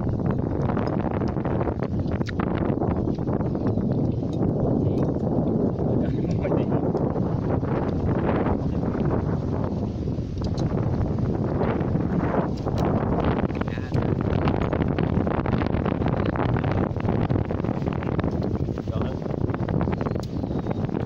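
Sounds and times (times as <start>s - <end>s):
wind buffeting microphone: 0.0s - 21.0s
people talking: 5.8s - 7.0s, 13.5s - 14.2s, 18.8s - 19.2s.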